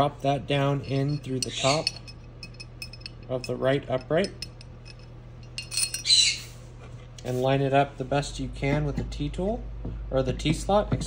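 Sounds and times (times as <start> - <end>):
screw rattling down metal bore: 0.6 - 6.4
light metallic clinks: 0.8 - 6.2.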